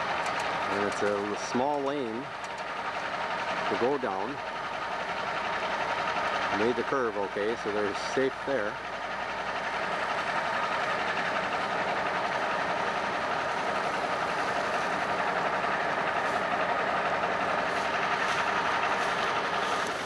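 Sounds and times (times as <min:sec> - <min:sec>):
diesel engine droning: 0:00.0 - 0:20.0.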